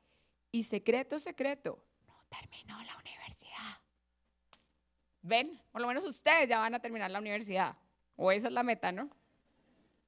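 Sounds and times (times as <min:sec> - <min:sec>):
breathy whispering voice: 0:02.1 - 0:03.9.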